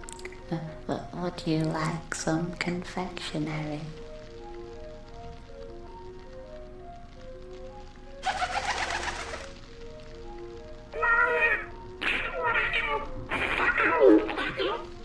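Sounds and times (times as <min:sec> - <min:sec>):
soft slow melody: 0:00.0 - 0:15.0
crow cawing: 0:11.0 - 0:14.6.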